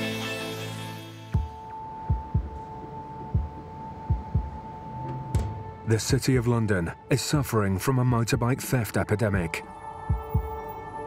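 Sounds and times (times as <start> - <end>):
deep heartbeat-like thumps: 1.4 - 6.5, 10.1 - 10.7.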